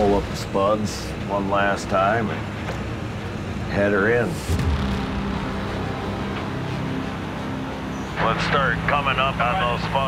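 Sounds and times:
dredge engines droning: 0:00.0 - 0:10.0.

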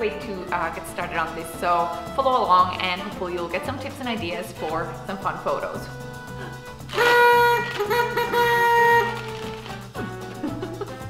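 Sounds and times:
party blower tooting: 0:06.9 - 0:09.8.

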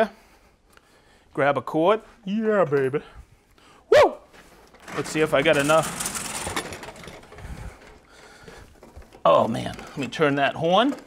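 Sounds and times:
hose and cord rustling: 0:04.3 - 0:11.0.

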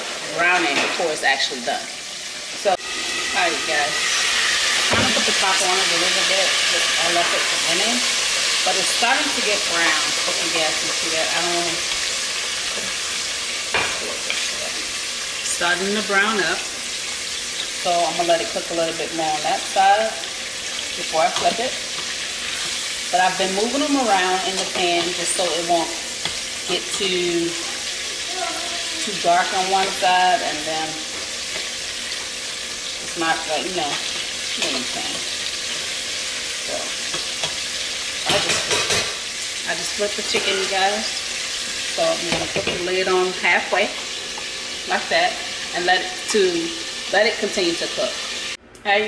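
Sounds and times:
chicken frying in oil: 0:00.0 - 0:48.6.

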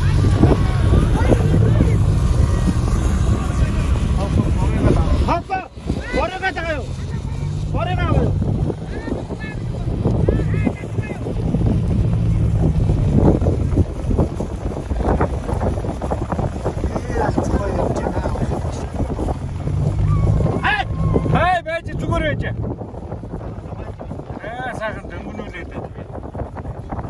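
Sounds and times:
voices calling out: 0:00.0 - 0:26.8
low engine drone: 0:00.0 - 0:27.0
wind on microphone: 0:00.0 - 0:27.0.

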